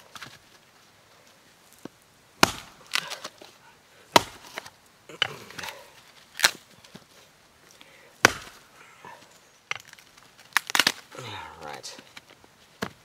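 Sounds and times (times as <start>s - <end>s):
axe chopping wood: 2.4s - 3.5s, 4.1s - 5.8s, 8.2s - 8.6s.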